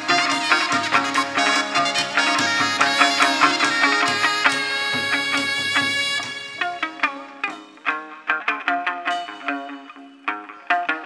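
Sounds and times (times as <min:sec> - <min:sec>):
plucked string instrument: 0:00.0 - 0:11.0.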